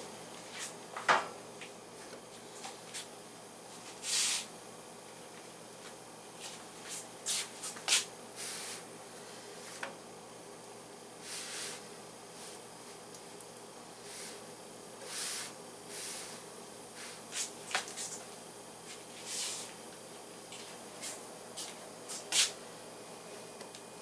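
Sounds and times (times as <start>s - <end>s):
faint steady hiss: 0.0s - 24.0s.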